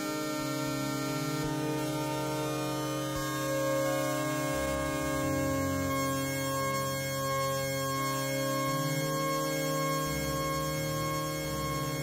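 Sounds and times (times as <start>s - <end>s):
electronic music sine tones: 0.0s - 12.0s.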